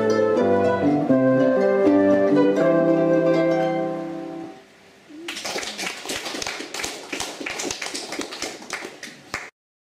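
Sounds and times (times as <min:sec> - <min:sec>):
audience clapping: 0:05.2 - 0:09.6.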